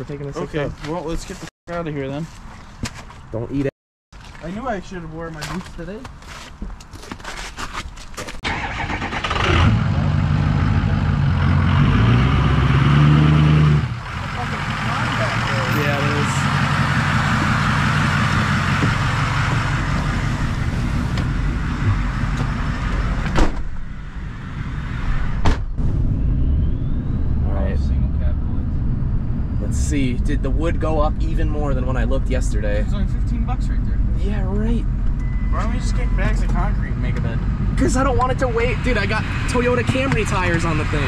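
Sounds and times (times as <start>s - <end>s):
diesel engine starting and running: 8.4s - 41.0s.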